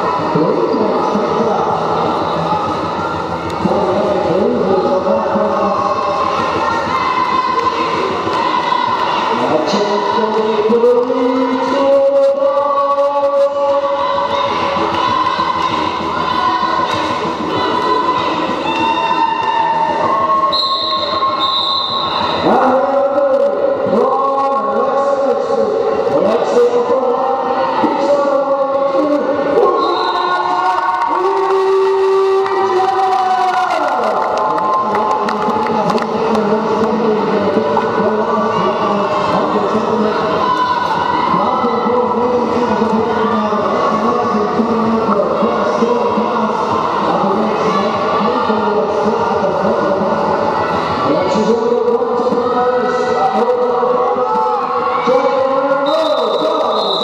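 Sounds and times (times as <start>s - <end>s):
crowd noise: 0.0s - 57.0s
long high whistle: 20.4s - 22.4s, 55.8s - 57.0s.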